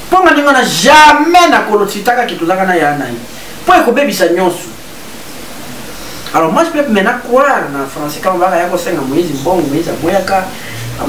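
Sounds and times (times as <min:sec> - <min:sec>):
steady hiss: 0:00.0 - 0:11.0
man's voice: 0:00.1 - 0:04.8.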